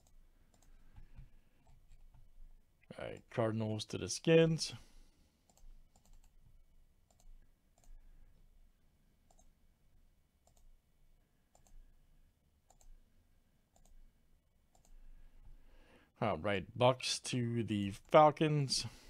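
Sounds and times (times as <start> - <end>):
computer mouse clicks: 0.0 - 2.3, 5.5 - 6.4, 7.1 - 8.0, 9.3 - 9.5, 10.4 - 10.7, 11.5 - 11.8, 12.7 - 13.0, 13.7 - 14.0, 14.7 - 15.0.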